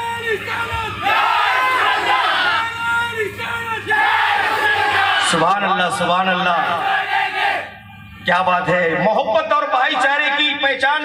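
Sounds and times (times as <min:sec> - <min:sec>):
crowd noise: 0:00.0 - 0:09.9.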